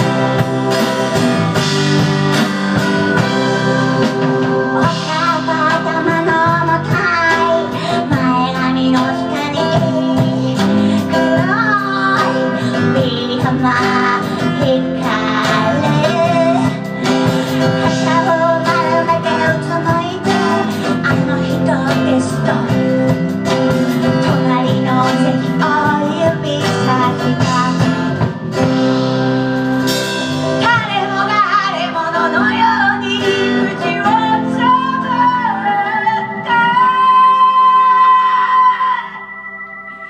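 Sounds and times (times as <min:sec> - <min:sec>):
electric bass: 0:00.0 - 0:38.2
keyboard: 0:00.0 - 0:40.0
woman singing: 0:04.8 - 0:28.3, 0:30.6 - 0:39.4.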